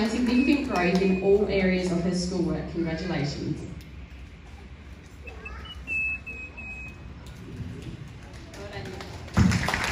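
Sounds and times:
low room hum: 0:00.0 - 0:09.9
thin high whistling tone: 0:05.2 - 0:07.0.

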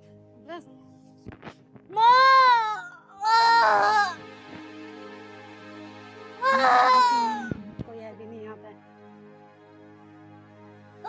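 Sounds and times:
newborn baby crying: 0:02.0 - 0:04.2, 0:06.4 - 0:07.5.

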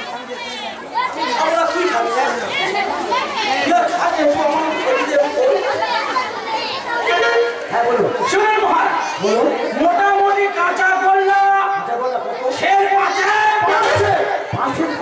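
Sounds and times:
voices talking over one another: 0:00.0 - 0:15.0.

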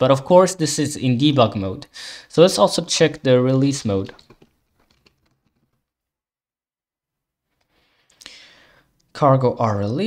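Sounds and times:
faint keyboard typing: 0:04.0 - 0:05.9.

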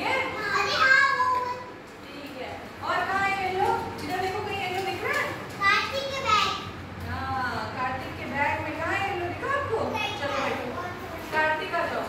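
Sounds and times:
young children speaking: 0:00.2 - 0:01.9, 0:05.6 - 0:06.8, 0:09.9 - 0:11.4.

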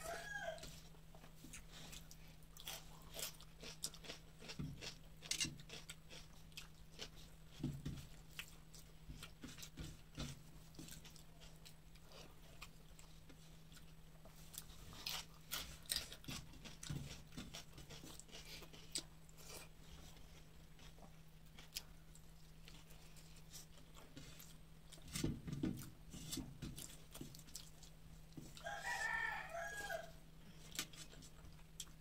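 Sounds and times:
rooster crowing: 0:00.0 - 0:00.8, 0:28.6 - 0:30.2
faint steady hum: 0:00.0 - 0:32.0.

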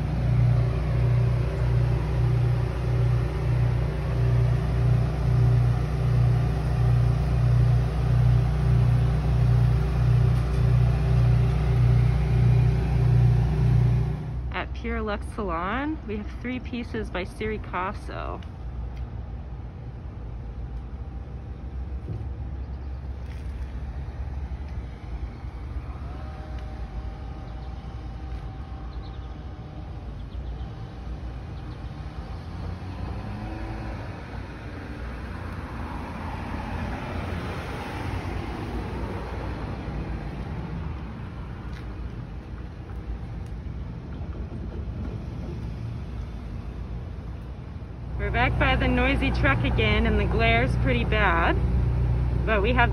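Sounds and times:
vehicle passing: 0:00.0 - 0:17.5, 0:22.0 - 0:52.9
low rumble of traffic: 0:00.0 - 0:52.9.

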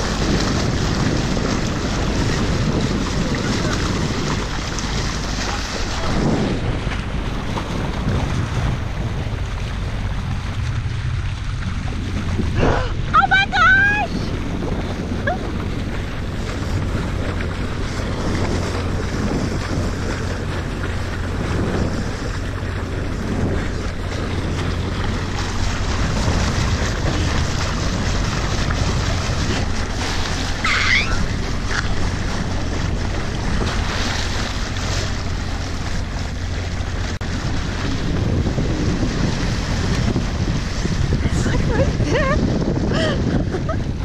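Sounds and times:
water washing along hull: 0:00.0 - 0:44.0
wind rumbling on microphone: 0:00.0 - 0:44.0.

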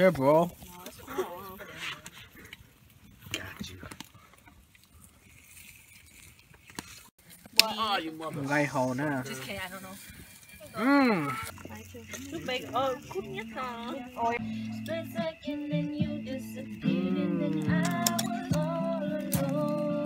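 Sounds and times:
person making sing-song sounds: 0:12.8 - 0:20.0.

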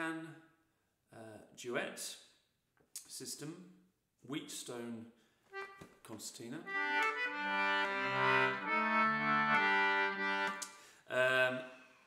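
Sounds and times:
concertina chords: 0:06.6 - 0:10.7.

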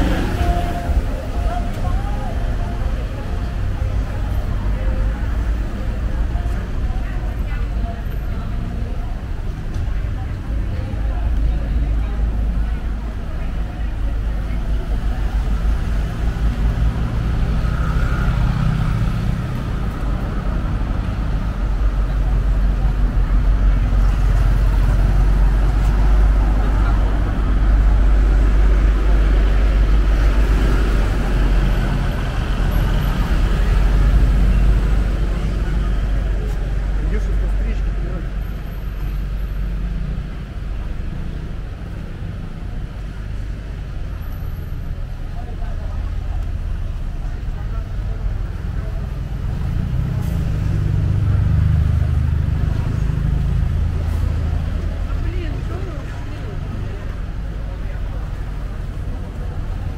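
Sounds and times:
cars passing: 0:00.0 - 0:59.9
people talking: 0:00.0 - 0:59.9.

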